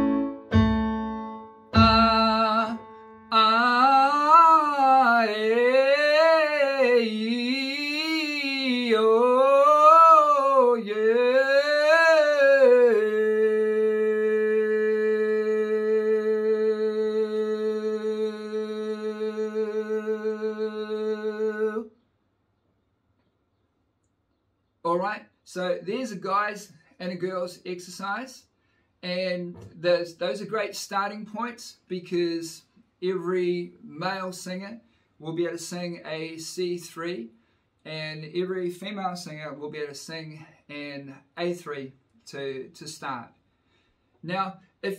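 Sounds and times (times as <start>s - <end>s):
electronic keyboard chords: 0.0s - 3.3s
man singing vocal scales: 1.8s - 21.9s.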